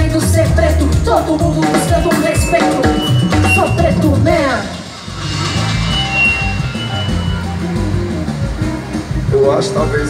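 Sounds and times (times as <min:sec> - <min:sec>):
instrumental music over pa: 0:00.9 - 0:09.3.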